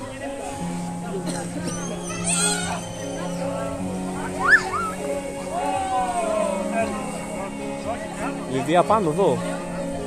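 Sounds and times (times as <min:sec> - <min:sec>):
background music: 0:00.0 - 0:10.0
children squealing excitedly: 0:01.8 - 0:03.6, 0:04.4 - 0:05.0.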